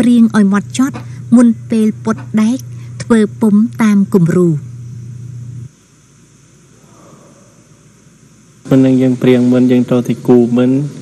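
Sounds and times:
faint background noise: 0:00.0 - 0:11.0
low steady hum: 0:00.0 - 0:11.0.

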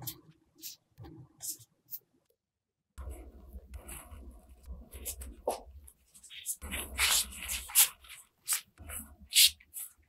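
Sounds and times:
gloved hands kneading dough: 0:03.0 - 0:10.0.

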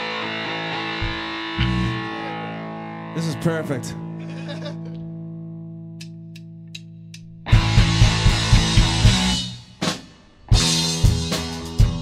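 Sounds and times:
distorted electric guitar chord: 0:00.0 - 0:04.7, 0:07.5 - 0:09.4.

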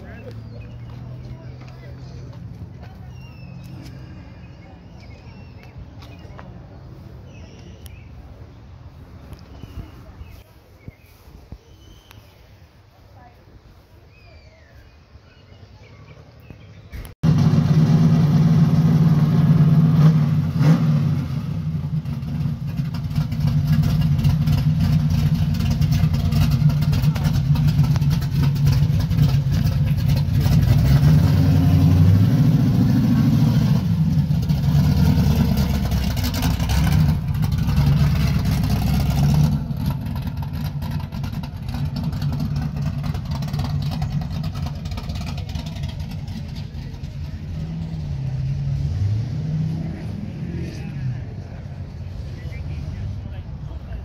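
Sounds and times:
car engine running: 0:17.2 - 0:48.5.

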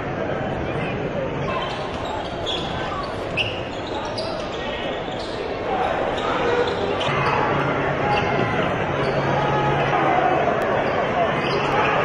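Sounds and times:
crowd noise: 0:00.0 - 0:12.0
sneaker squeaks: 0:01.5 - 0:08.4, 0:10.8 - 0:12.0.

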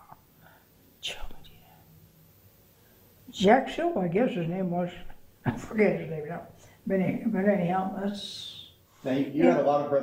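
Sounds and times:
faint low hum: 0:00.0 - 0:10.0
woman whispering: 0:01.0 - 0:01.9.

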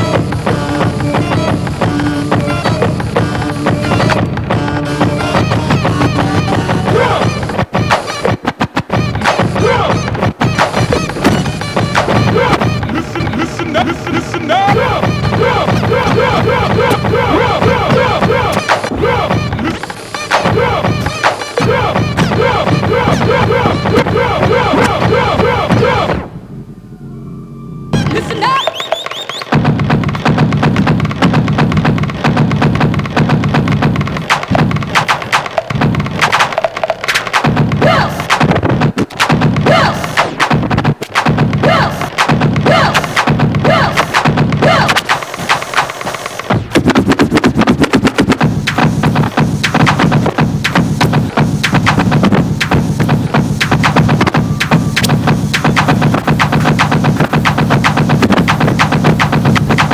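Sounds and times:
scratched drum breaks: 0:00.0 - 0:26.4, 0:27.9 - 0:59.9.

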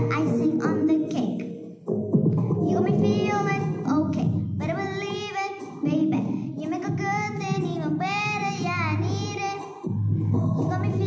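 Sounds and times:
girl singing pop song: 0:00.0 - 0:11.0
singer breathing: 0:06.2 - 0:06.6, 0:10.0 - 0:10.6.

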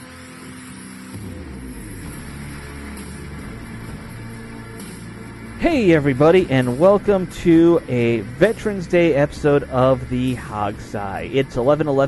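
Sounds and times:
intro music with low guitar notes: 0:00.0 - 0:12.0.

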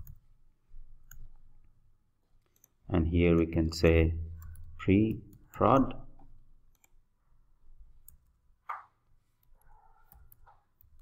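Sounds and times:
keyboard and mouse clicks: 0:00.0 - 0:00.3, 0:01.0 - 0:01.4, 0:02.4 - 0:03.5, 0:04.3 - 0:07.0, 0:08.0 - 0:11.0.

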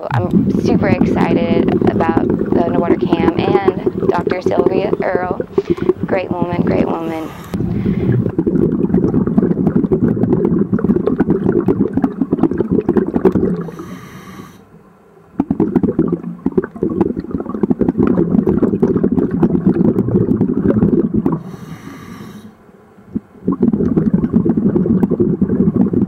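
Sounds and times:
exhaled bubbles underwater: 0:00.0 - 0:14.6, 0:15.2 - 0:22.5, 0:23.1 - 0:26.0
regulator inhalation hiss: 0:06.8 - 0:08.3, 0:13.6 - 0:14.7, 0:21.4 - 0:22.6.

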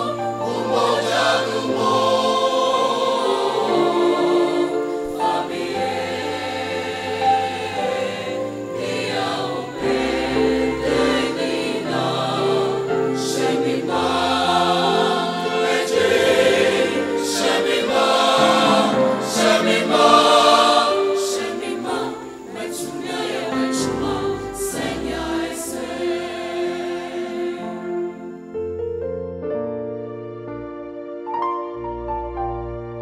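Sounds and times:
mixed choir singing: 0:00.0 - 0:28.6.

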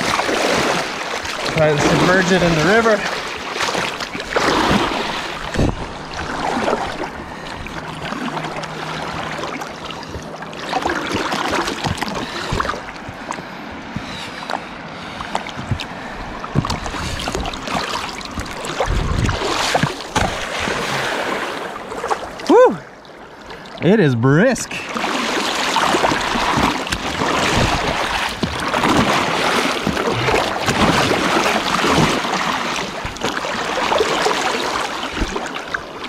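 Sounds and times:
water splashing around plastic case: 0:00.0 - 0:13.5, 0:15.3 - 0:21.4, 0:24.9 - 0:36.0
river rushing: 0:00.0 - 0:14.4, 0:15.1 - 0:23.3, 0:24.6 - 0:36.0
person exclaiming: 0:22.4 - 0:22.9.

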